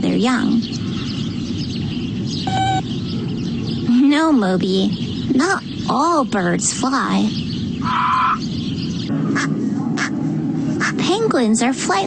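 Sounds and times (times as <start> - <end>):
birds chirping: 0.0 - 12.0
short electronic beep: 2.5 - 2.8.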